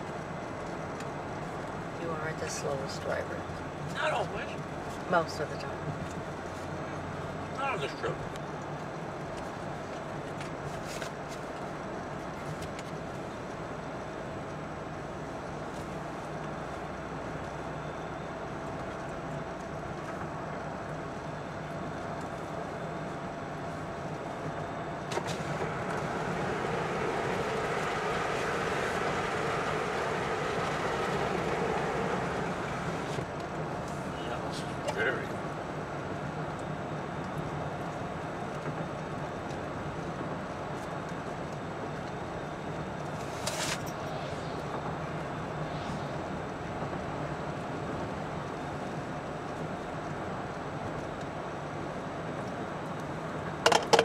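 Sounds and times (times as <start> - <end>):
tyre and engine hum: 23.7 - 36.8.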